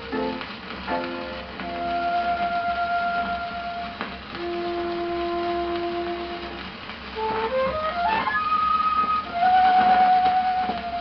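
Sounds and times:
flute solo on old record: 0:00.0 - 0:11.0
record surface hiss: 0:00.0 - 0:11.0.

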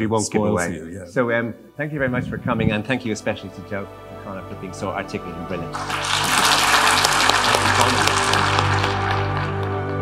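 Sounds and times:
music of long low tones: 0:01.8 - 0:10.0
audience applauding: 0:05.7 - 0:10.0.

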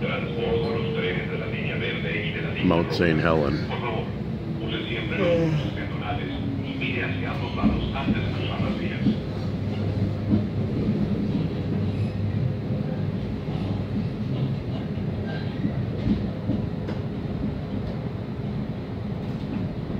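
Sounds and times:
wheels rumbling on rails: 0:00.0 - 0:19.9.

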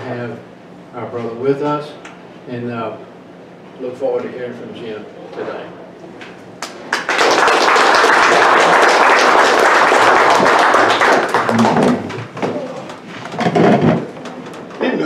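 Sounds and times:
audience applauding: 0:06.6 - 0:13.0.

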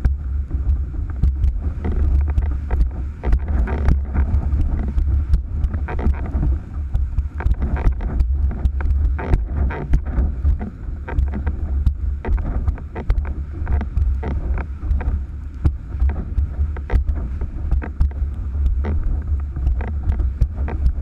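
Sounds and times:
board rushing over choppy water: 0:00.0 - 0:21.0
wind buffeting microphone: 0:00.0 - 0:21.0.

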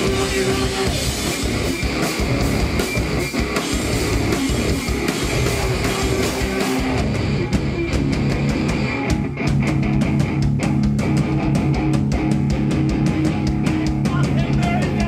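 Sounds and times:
bass guitar: 0:00.0 - 0:15.0
distorted electric guitars: 0:00.0 - 0:15.0
drum kit: 0:00.0 - 0:15.0.

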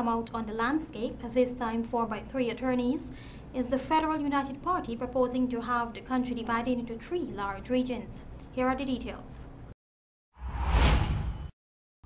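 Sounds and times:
transition whoosh: 0:10.4 - 0:11.5.

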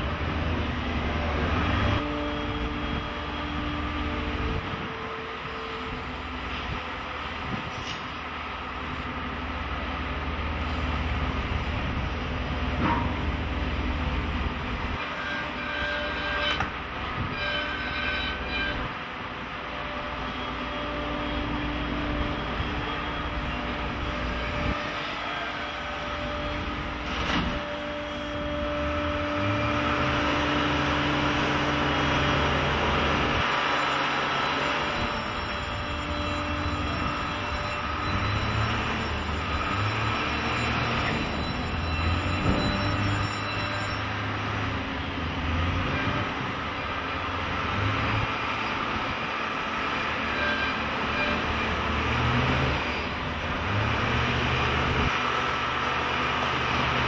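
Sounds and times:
machine hum with hydraulic whine: 0:00.0 - 0:57.0.

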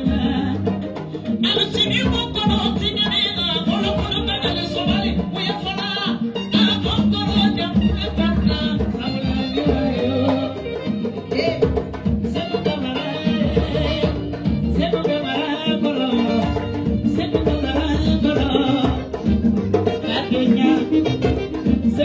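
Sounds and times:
djembe hand drums: 0:00.0 - 0:22.0.

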